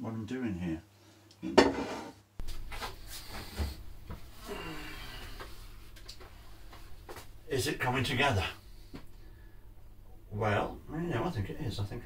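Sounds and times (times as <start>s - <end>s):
steady low hum: 2.4s - 12.0s.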